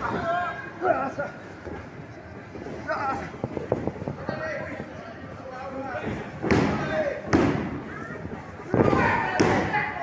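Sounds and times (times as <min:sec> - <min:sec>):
people shouting: 0:08.8 - 0:10.0.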